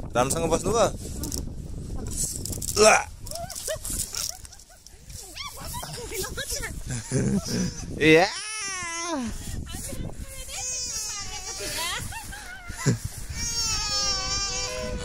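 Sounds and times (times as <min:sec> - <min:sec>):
toddler vocalizing: 0:13.3 - 0:15.0.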